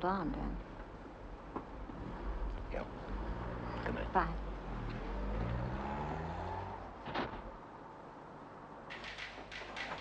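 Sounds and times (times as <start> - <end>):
car engine pulling away: 1.9 - 7.4.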